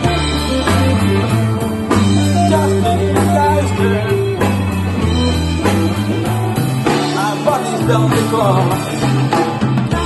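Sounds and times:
bass guitar: 0.0s - 10.0s
drum kit: 0.0s - 10.0s
electric guitars: 0.0s - 10.0s
keyboard: 0.0s - 10.0s.

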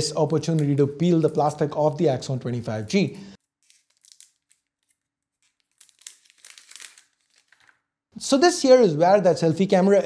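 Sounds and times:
plastic film crinkling: 3.4s - 8.0s.

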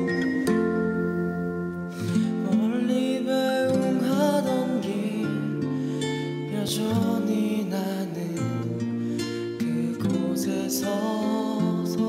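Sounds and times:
slow instrumental ballad: 0.0s - 12.0s.

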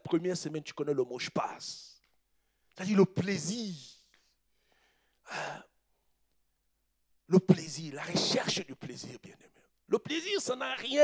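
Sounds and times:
breath into a microphone: 4.5s - 5.7s.

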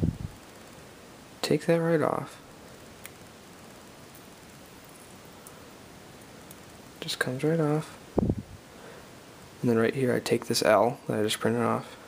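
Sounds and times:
faint steady hiss: 0.0s - 12.0s.

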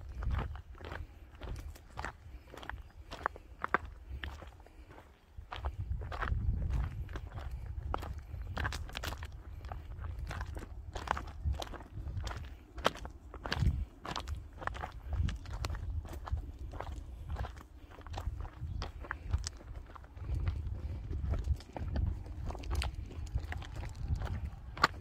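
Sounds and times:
footsteps on gravel: 0.0s - 25.0s
low rumble: 18.1s - 25.0s.

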